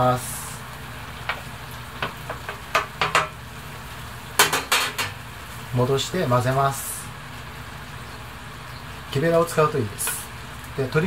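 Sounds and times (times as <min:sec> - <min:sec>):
food simmering in a pan: 0:00.0 - 0:11.0.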